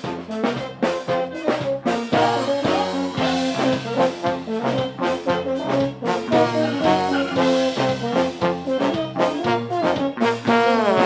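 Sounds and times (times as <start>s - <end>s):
brass horn melody: 0.0s - 11.0s
electric guitar: 0.0s - 11.0s
live brass band music: 0.0s - 11.0s
trombone: 0.0s - 11.0s.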